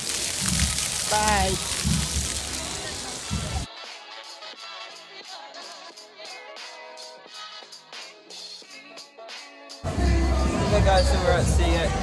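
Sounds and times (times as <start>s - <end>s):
fountain water splashing on paving: 0.0s - 3.7s.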